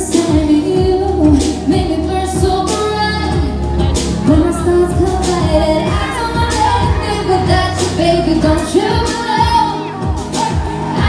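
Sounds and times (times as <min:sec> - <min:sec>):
pop backing music with beat: 0:00.0 - 0:11.0
woman singing into microphone: 0:00.0 - 0:11.0.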